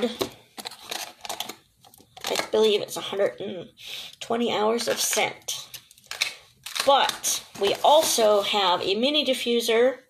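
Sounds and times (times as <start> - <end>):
plastic packaging clicks and crinkles: 0.0 - 2.6, 4.8 - 8.3.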